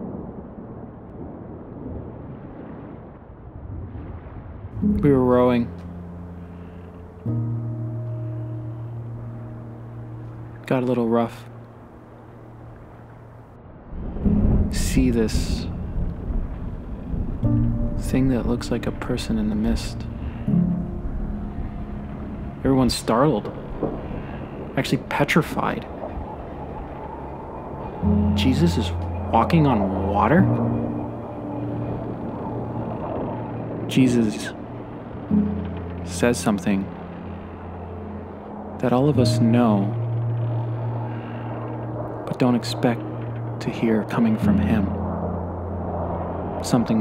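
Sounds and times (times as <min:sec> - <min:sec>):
storm at sea rumbling: 0:00.0 - 0:47.0.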